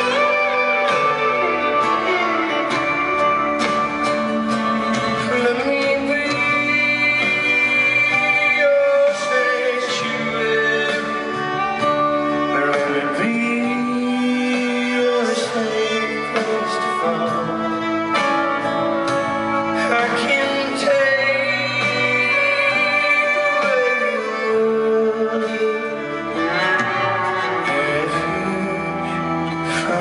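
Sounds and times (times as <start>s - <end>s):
guitar: 0.0s - 30.0s
live band playing country ballad: 0.0s - 30.0s.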